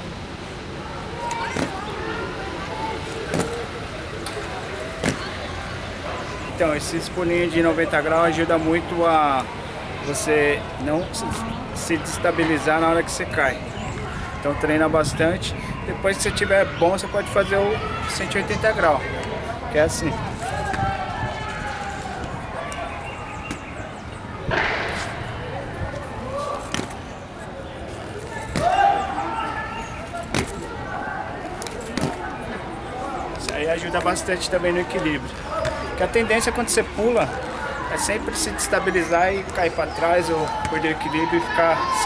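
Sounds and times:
inline skates landing on concrete: 28.4 - 29.0.

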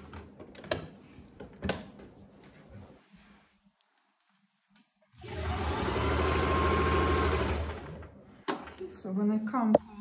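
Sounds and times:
sewing machine stitching: 5.2 - 8.1.

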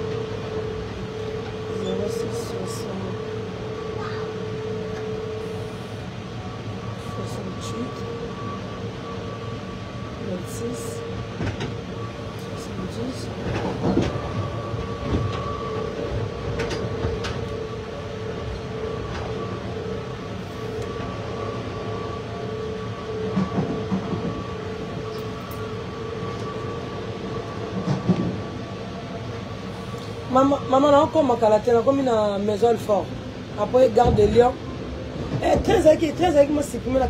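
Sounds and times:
train carriage rumble: 0.0 - 37.0.

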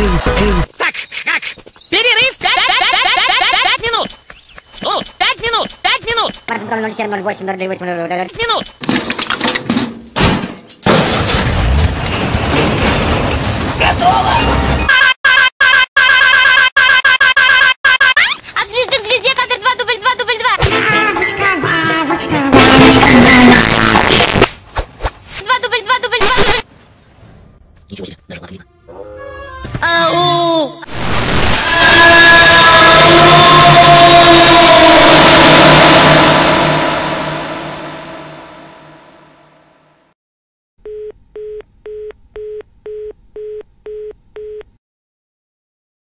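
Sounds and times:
loud harsh rushing noise: 30.9 - 39.2
steady tones: 35.3 - 39.3.

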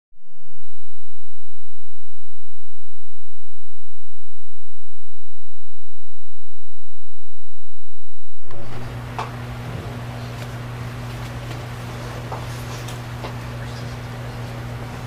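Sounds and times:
steady electronic tone: 2.2 - 9.0.

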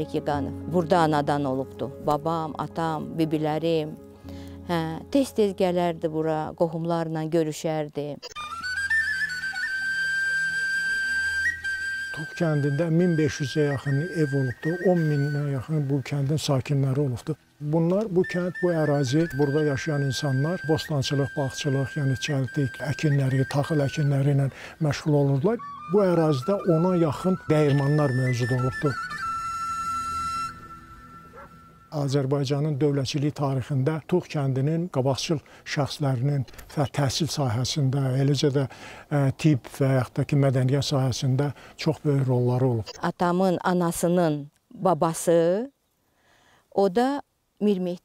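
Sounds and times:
faint background sound: 0.0 - 48.0.

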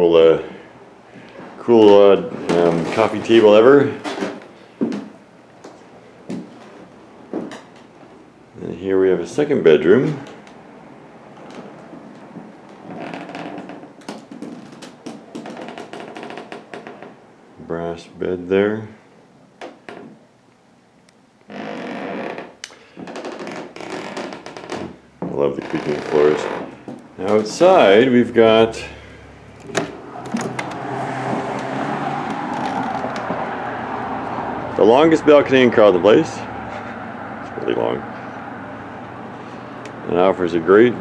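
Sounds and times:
footsteps on floor: 4.4 - 7.6
road traffic: 9.4 - 13.4, 26.4 - 41.0
door clicks: 29.5 - 33.3.

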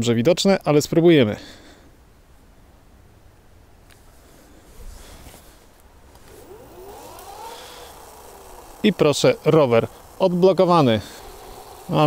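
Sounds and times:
electric bike motor whining: 4.7 - 12.0.

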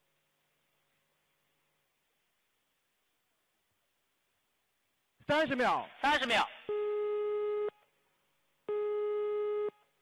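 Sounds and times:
electronic countdown beep: 6.7 - 7.8, 8.7 - 9.8.

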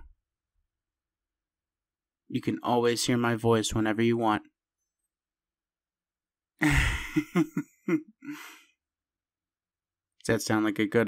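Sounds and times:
man chuckling softly: 6.6 - 8.6.

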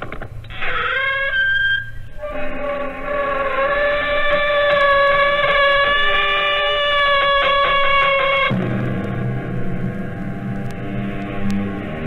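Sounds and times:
door hinge creaking: 0.0 - 8.5.

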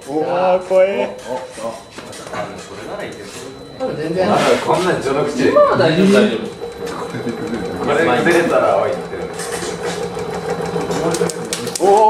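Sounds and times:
shaking table mechanical hum: 0.0 - 12.0
sharp ticks: 6.4 - 12.0.

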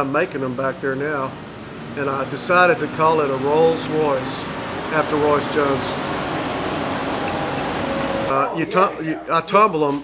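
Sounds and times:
room fan rushing noise: 0.6 - 8.6.

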